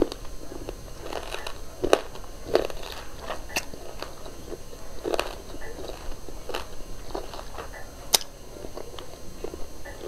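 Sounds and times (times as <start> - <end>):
chewing food: 0.0 - 10.0
mouth clicks: 0.0 - 10.0
wet crunches: 0.0 - 10.0.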